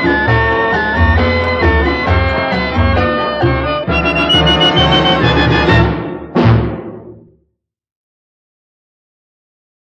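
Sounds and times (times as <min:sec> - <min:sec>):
dance orchestra playing: 0:00.0 - 0:06.7.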